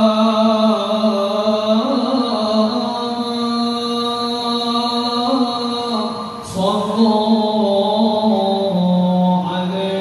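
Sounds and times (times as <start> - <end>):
man chanting melismatically: 0.0 - 10.0.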